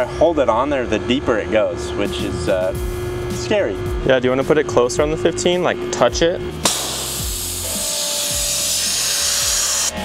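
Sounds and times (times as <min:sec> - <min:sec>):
pressure washer spraying: 0:06.7 - 0:10.0.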